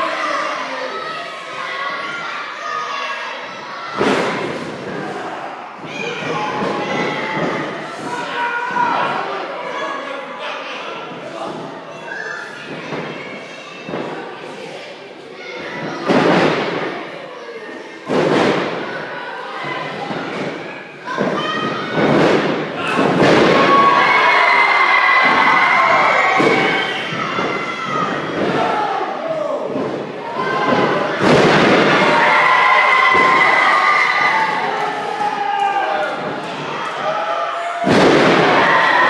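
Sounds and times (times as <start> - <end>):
crowd shouting and cheering: 0.0 - 39.0.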